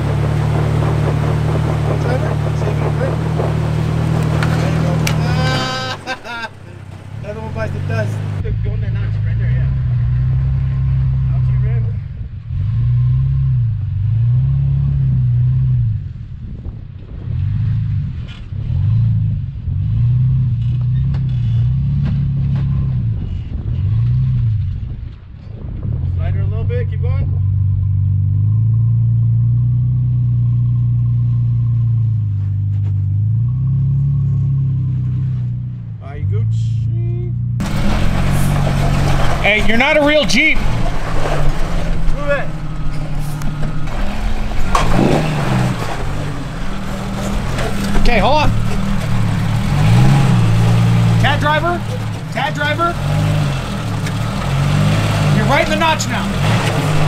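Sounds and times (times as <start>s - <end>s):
truck engine revving: 0.0s - 57.0s.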